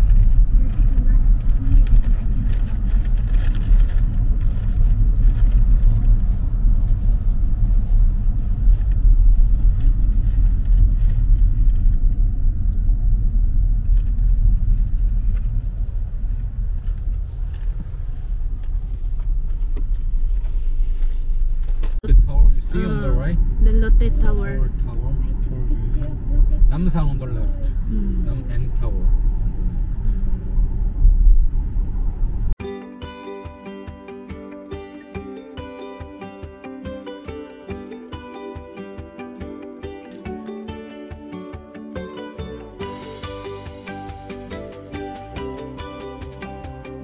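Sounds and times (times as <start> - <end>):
car road and engine rumble: 0.0 - 32.6, 40.9 - 47.0.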